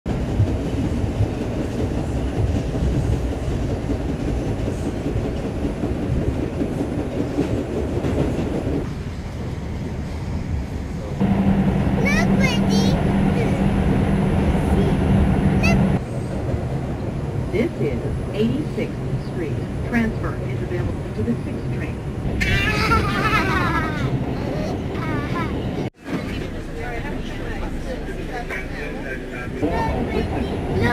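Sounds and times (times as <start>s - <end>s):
train hum: 0.1s - 30.9s
train wheels rumbling on track: 0.1s - 30.9s.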